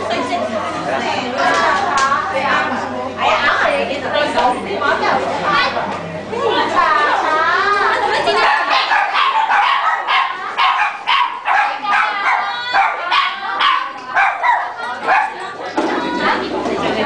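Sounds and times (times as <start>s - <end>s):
people talking: 0.0s - 17.0s
small dog yapping: 8.6s - 15.3s.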